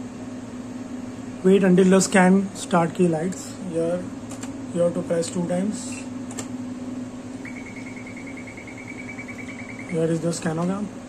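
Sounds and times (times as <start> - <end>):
steady low hum: 0.0 - 11.0
fast high-pitched beeping: 7.4 - 10.2.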